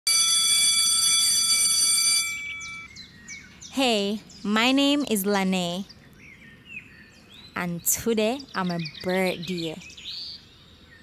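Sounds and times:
steady high-pitched tone: 0:00.1 - 0:02.9.

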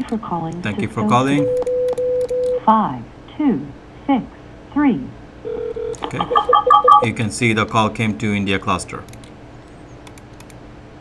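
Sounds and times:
electronic phone ringing: 0:00.8 - 0:02.6, 0:05.5 - 0:07.3
short low telephone beeps: 0:06.0 - 0:07.1.

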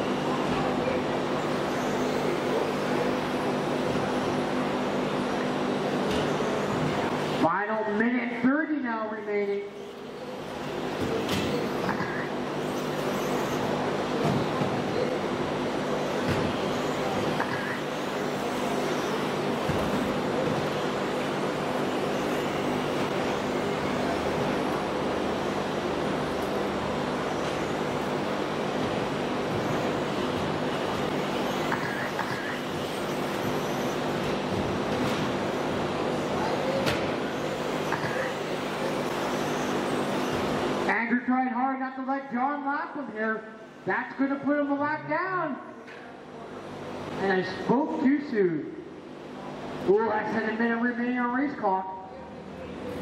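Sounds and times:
constant hum: 0:00.0 - 0:53.0
rc car motor and tyre noise: 0:01.4 - 0:04.5, 0:06.2 - 0:07.2, 0:09.8 - 0:40.7.

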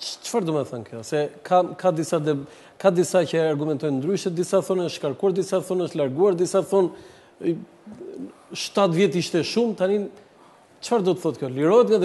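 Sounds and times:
man speaking: 0:00.0 - 0:10.2, 0:10.8 - 0:12.0.

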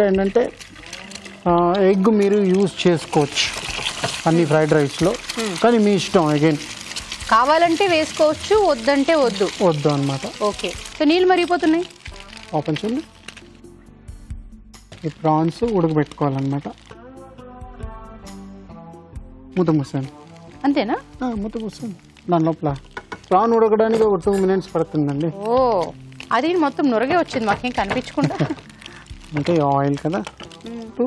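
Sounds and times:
food frying in a pan: 0:00.0 - 0:13.4, 0:20.7 - 0:31.0
people talking: 0:25.2 - 0:28.6.

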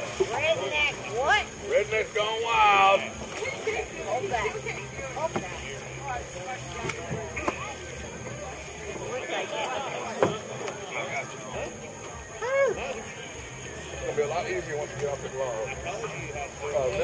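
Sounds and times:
people talking: 0:00.0 - 0:17.0.

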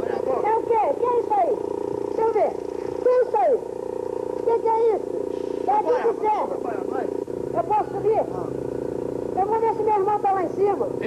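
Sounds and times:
steady buzzing hum: 0:00.0 - 0:11.0.

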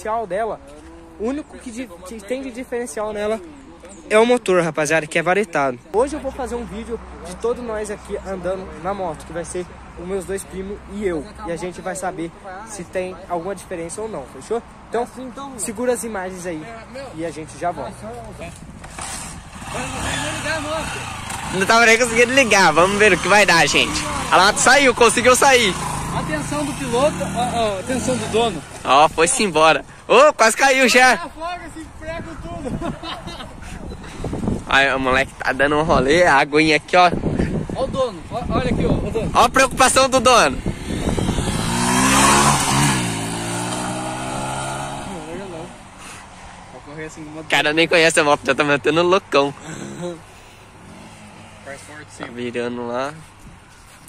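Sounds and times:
motorcycle engine revving: 0:18.4 - 0:29.0, 0:40.0 - 0:45.8, 0:50.8 - 0:52.0
people talking: 0:19.6 - 0:33.8, 0:44.9 - 0:45.8.

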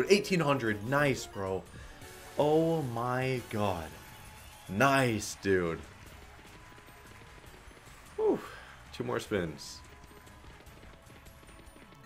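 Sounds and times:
quiet game music: 0:00.0 - 0:12.0.

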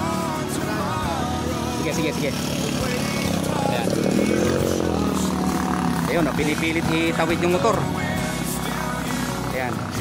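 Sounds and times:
small motorcycle engine revving: 0:01.7 - 0:10.0.

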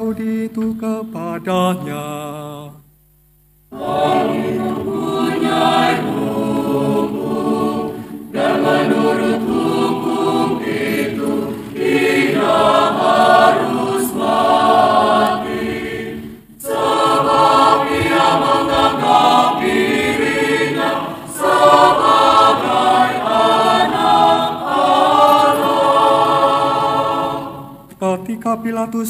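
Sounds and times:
choir singing: 0:01.0 - 0:02.7, 0:03.7 - 0:27.9.

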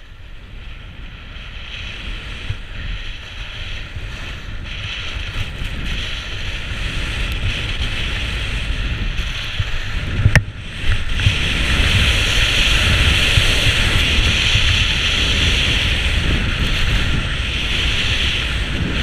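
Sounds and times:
skis hissing on snow: 0:00.0 - 0:19.0
wind buffeting microphone: 0:00.0 - 0:19.0.

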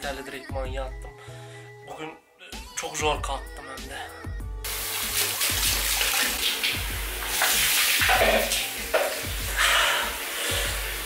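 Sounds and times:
music with bass beat: 0:04.2 - 0:09.8
shower water spraying: 0:04.7 - 0:11.0.

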